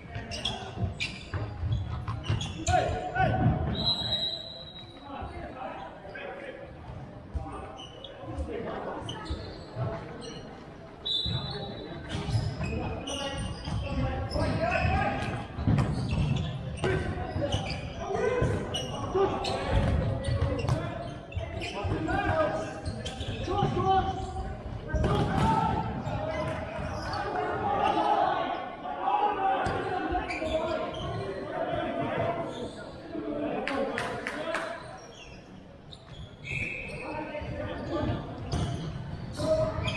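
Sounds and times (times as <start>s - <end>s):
ball bouncing on hardwood court: 25.0s - 25.8s
players shouting: 25.0s - 32.6s.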